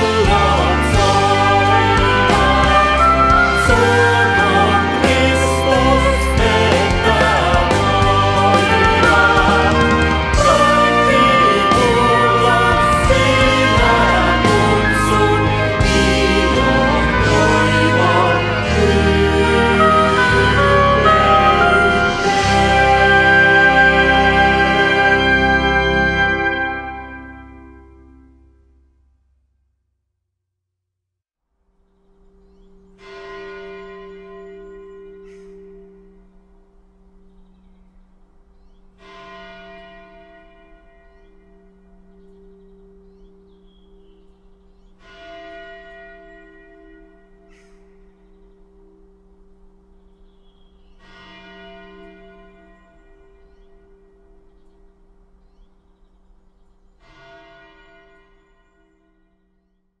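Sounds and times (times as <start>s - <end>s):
church bell tolling: 0.0s - 28.7s, 32.2s - 59.8s.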